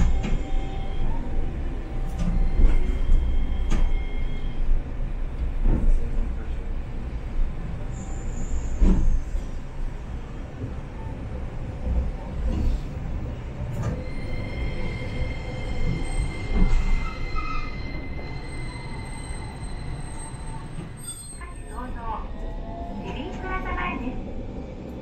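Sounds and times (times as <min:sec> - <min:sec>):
tram wheels rumbling on rail: 0:00.0 - 0:25.0
high-pitched wheel squeal: 0:14.0 - 0:21.8.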